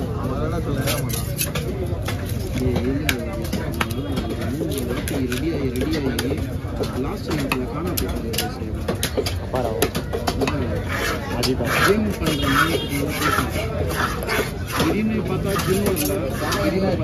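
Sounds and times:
knife scraping fish scales: 0.8 - 2.6, 10.8 - 17.0.

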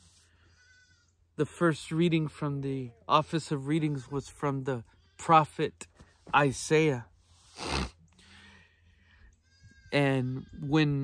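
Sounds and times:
goat bleating faintly: 0.4 - 1.2, 9.0 - 11.0
speech: 1.4 - 7.1, 10.0 - 11.0.

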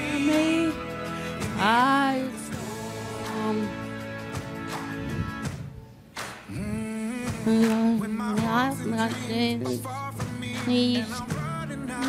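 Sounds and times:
woman singing held notes: 7.4 - 9.9.

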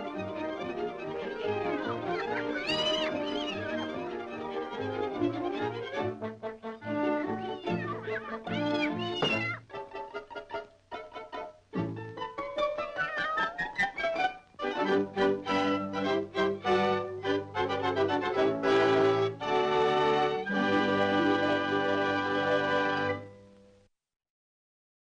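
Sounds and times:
orchestral cartoon music: 0.0 - 23.3
high gliding meow-like cries: 2.1 - 4.0, 7.2 - 9.6.

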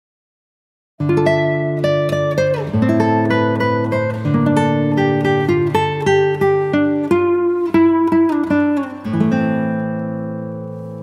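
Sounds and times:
acoustic guitar plucked notes: 1.0 - 11.0.

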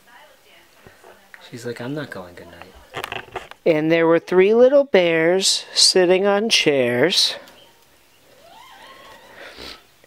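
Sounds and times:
board-book page turning: 2.6 - 3.6.

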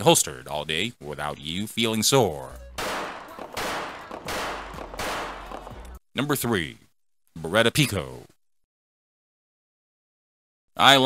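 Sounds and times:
pistol shots with echo: 2.8 - 5.8.

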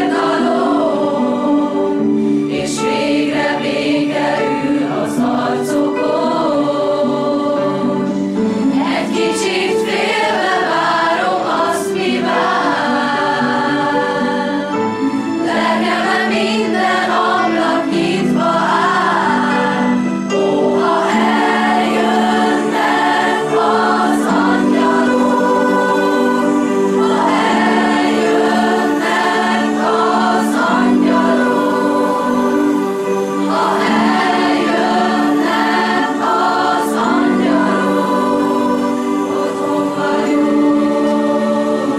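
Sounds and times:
choir singing sustained chords: 0.0 - 41.9.

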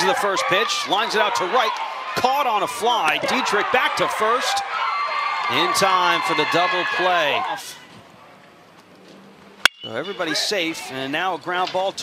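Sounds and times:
faint crowd ambience: 0.0 - 12.0.

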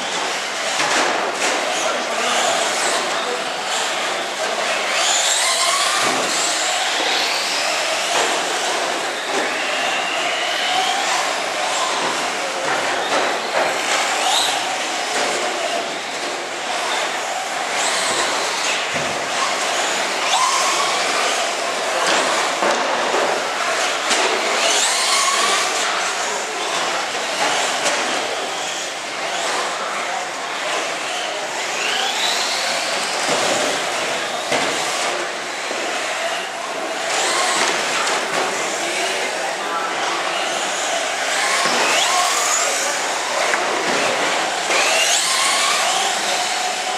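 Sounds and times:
electric toy car motors whining: 0.0 - 46.9
steady noisy background: 0.0 - 46.9.

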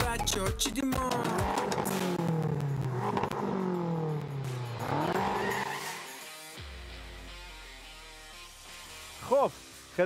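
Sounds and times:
car engine revving: 1.1 - 6.6.

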